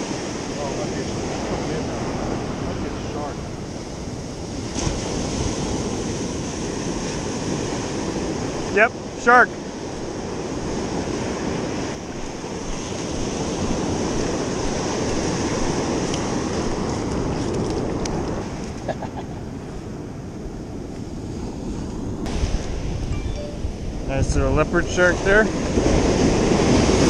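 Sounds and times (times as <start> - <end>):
surf breaking on sandy beach: 0.0 - 20.2, 21.3 - 27.0
wind buffeting microphone: 0.0 - 27.0.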